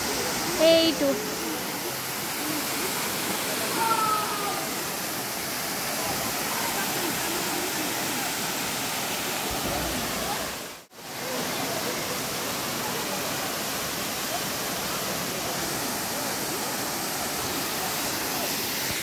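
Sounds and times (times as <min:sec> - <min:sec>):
waterfall rushing: 0:00.0 - 0:19.0.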